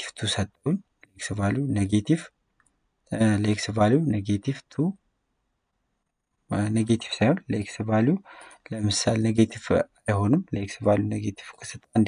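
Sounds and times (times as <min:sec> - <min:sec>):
man speaking: 0:00.0 - 0:02.3, 0:03.1 - 0:05.0, 0:06.5 - 0:12.0.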